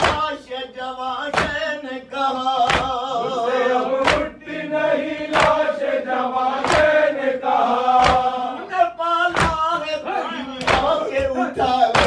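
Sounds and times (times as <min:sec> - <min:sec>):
man chanting a lament: 0:00.0 - 0:04.5, 0:07.9 - 0:12.0
other voices chanting: 0:00.0 - 0:12.0.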